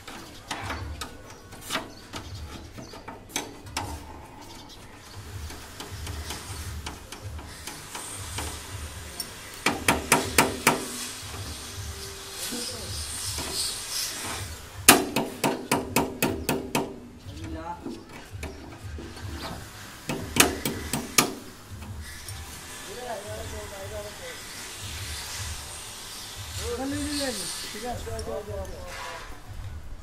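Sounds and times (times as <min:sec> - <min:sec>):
hand tool scraping metal: 0:00.0 - 0:29.5
hammer striking steel mould: 0:14.9 - 0:17.1.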